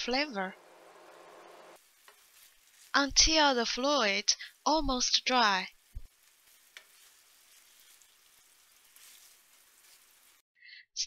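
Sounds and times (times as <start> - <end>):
tofu sizzling in frying pan: 0.7 - 10.4.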